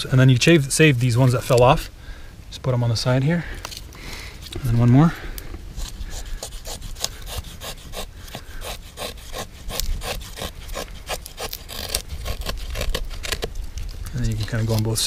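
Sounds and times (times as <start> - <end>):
knife scraping wood: 5.7 - 15.0.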